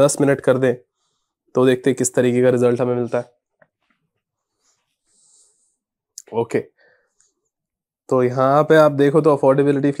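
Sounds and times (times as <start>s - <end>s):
man speaking: 0.0s - 0.8s, 1.5s - 3.4s, 6.2s - 6.8s, 8.1s - 10.0s.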